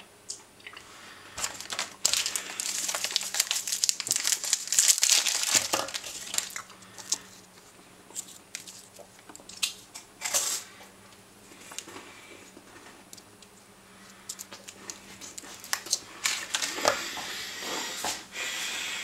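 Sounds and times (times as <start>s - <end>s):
plastic wrapper crinkling and tearing: 1.4s - 7.5s, 8.1s - 10.6s, 14.3s - 16.9s.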